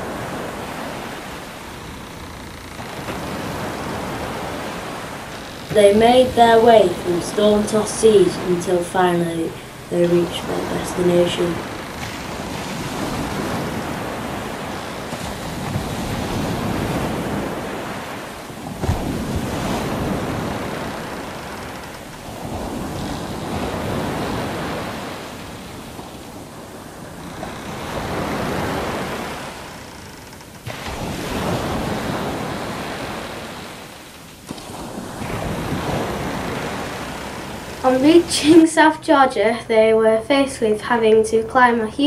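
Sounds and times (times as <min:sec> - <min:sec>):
ocean waves washing: 0:00.0 - 0:42.0.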